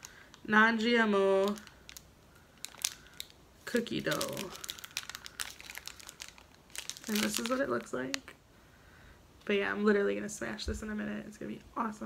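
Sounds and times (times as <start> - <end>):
plastic wrapper crinkling: 0.0 - 8.4.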